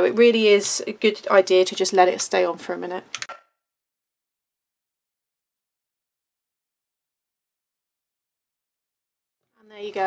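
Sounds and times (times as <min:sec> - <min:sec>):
woman speaking: 0:00.0 - 0:03.1, 0:09.6 - 0:10.0.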